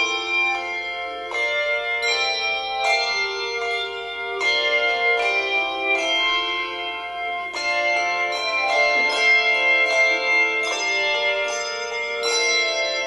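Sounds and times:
handbell chords ringing: 0.0s - 13.0s.

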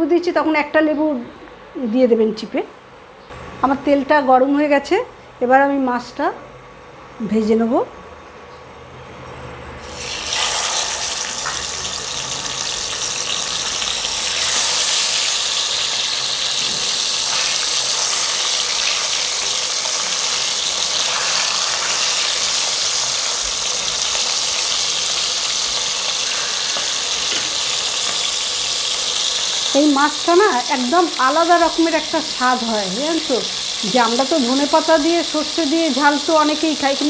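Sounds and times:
fish sizzling in hot oil: 9.8s - 37.0s.

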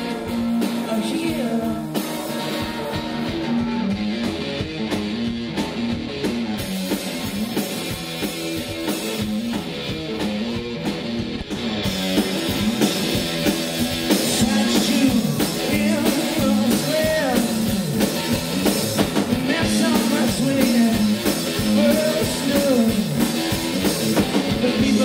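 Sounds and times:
drum kit: 0.0s - 25.0s
electric guitar riff: 0.0s - 25.0s.

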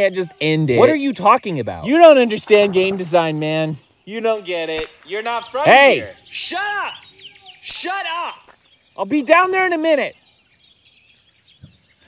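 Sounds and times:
birds chirping softly: 0.0s - 12.0s.

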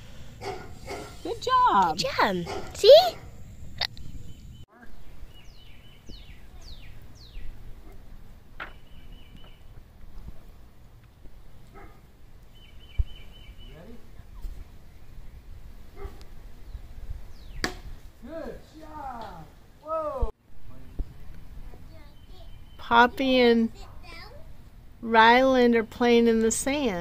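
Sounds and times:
birds chirping: 0.0s - 17.8s, 20.6s - 24.2s
bird trills: 8.6s - 9.7s
sharp knock: 17.6s - 17.9s.

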